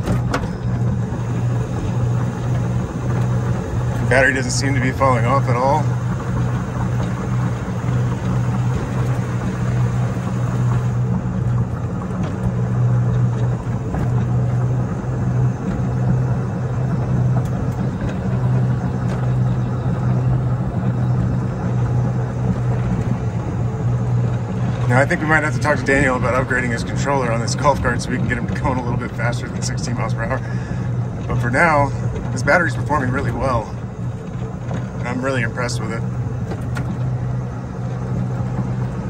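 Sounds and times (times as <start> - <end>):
electric golf cart humming: 0.0 - 39.0
road and wind noise: 0.0 - 39.0.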